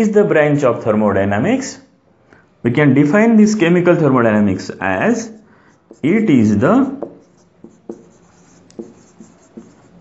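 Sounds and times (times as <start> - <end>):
marker writing on a whiteboard: 5.0 - 10.0.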